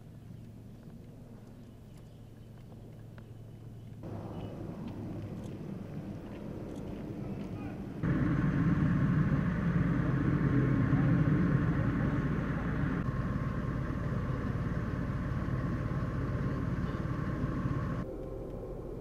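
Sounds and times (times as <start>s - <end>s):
faint steady whine: 0.0s - 19.0s
vehicle engine rumble: 0.0s - 19.0s.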